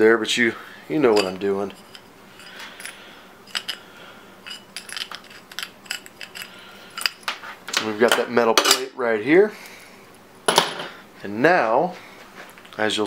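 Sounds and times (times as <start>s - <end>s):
small metal parts clinking: 1.1s - 7.3s.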